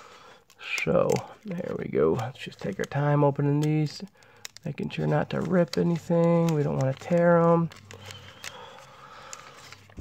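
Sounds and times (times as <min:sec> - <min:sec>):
wax paper wrapper crinkling: 0:00.2 - 0:10.0.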